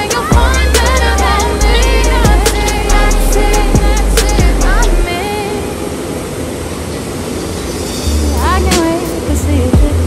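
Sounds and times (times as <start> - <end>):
water rushing and spraying: 0.0 - 10.0.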